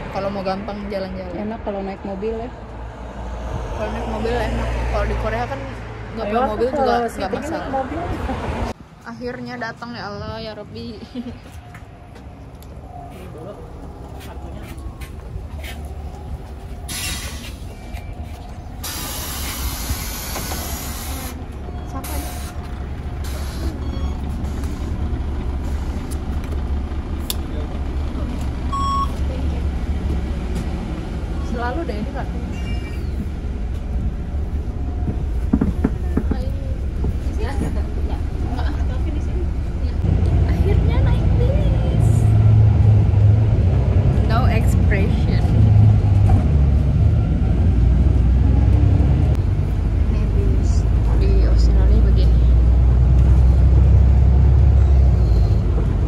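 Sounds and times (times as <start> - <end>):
bus engine rumble: 0.0 - 56.0
quiet passenger voices: 10.8 - 23.8, 35.0 - 42.2
short electronic beep: 28.7 - 29.2.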